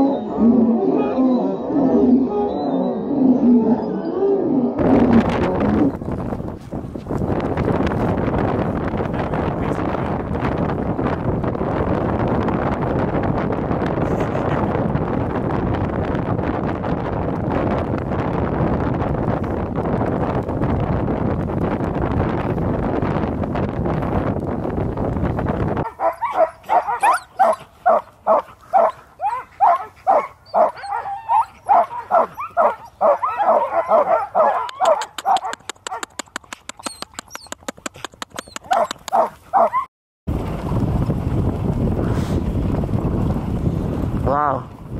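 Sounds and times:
wind on microphone: 0.0s - 44.9s
rushing dog sled: 4.8s - 35.5s, 38.2s - 44.9s
sled dogs barking and yipping: 25.8s - 39.9s.

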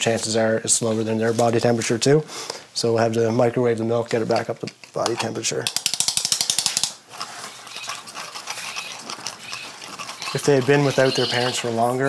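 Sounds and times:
rapid light sharp clicks: 5.6s - 7.0s.

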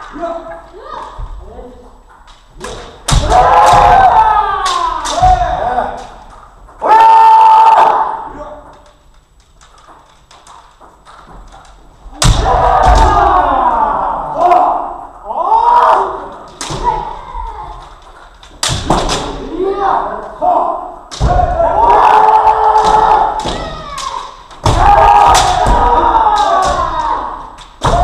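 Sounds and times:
people shouting in echoing hall: 3.0s - 8.6s, 12.1s - 17.9s, 19.2s - 28.0s.

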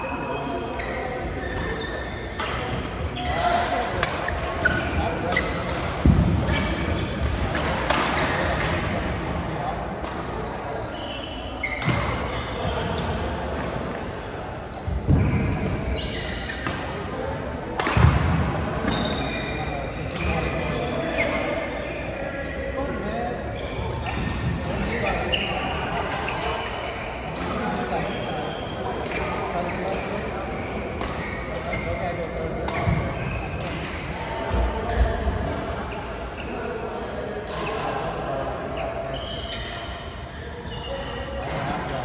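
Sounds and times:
shoe squeaks on court floor: 0.0s - 5.9s, 10.8s - 14.3s, 15.2s - 18.0s, 18.8s - 22.4s, 23.4s - 34.2s, 38.8s - 42.0s
badminton rackets hitting shuttlecocks: 17.8s - 19.2s.

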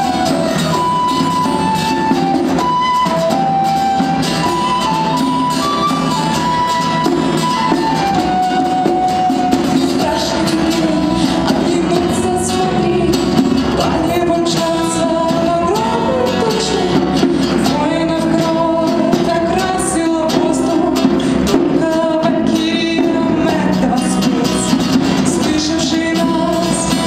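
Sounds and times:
hand drum: 0.0s - 27.0s
strummed acoustic guitar: 0.0s - 27.0s
woman singing: 3.8s - 27.0s.

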